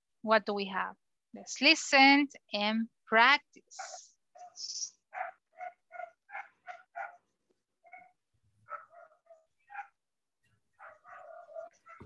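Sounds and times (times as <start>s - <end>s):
faint dog barking: 3.7s - 12.0s.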